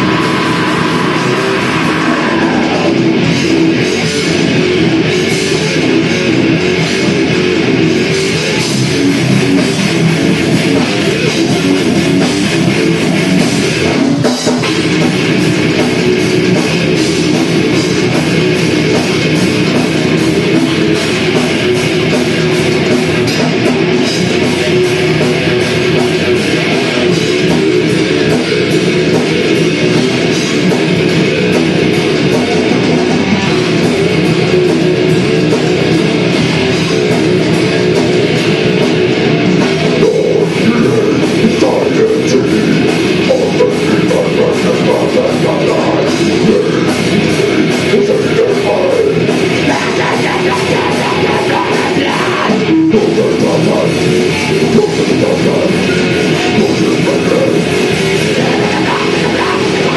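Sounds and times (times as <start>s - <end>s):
bass guitar: 0.0s - 59.9s
drum kit: 0.0s - 59.9s
electric guitars: 0.0s - 59.9s.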